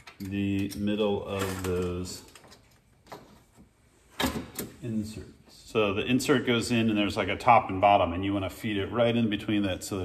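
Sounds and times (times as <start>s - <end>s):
man speaking: 0.2s - 2.3s, 4.8s - 10.0s.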